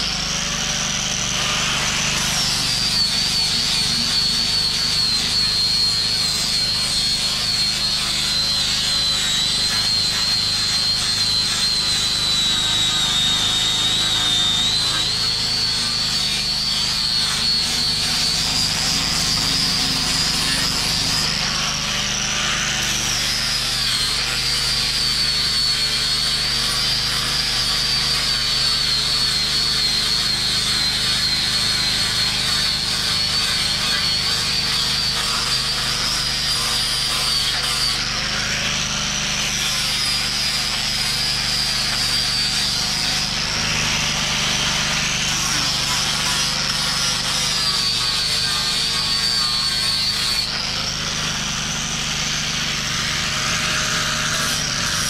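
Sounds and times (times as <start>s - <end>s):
angle grinder sanding wood: 0.0s - 55.0s.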